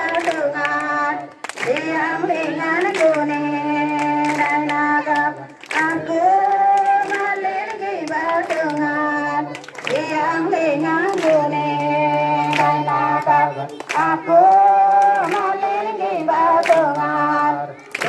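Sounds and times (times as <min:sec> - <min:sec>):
hands clapping: 0:00.0 - 0:17.1
crowd singing a hymn: 0:00.0 - 0:18.0.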